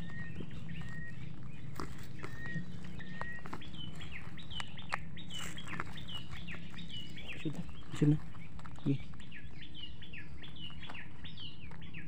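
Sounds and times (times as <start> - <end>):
birds chirping: 0.0 - 12.0
steady low hum: 0.0 - 12.0.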